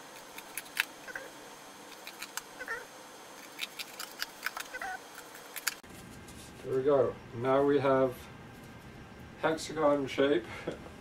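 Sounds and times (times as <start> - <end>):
scissors snipping paper: 3.4 - 5.8.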